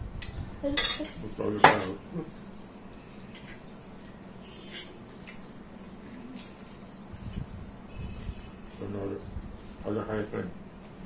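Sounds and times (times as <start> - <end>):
dishes and cutlery clinking: 0.2 - 2.0, 4.6 - 5.4.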